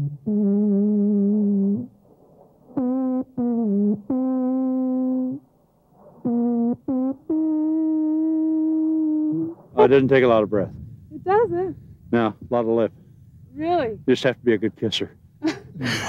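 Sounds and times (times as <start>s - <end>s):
alphorn playing slow tune: 0.0s - 2.0s, 6.3s - 9.9s.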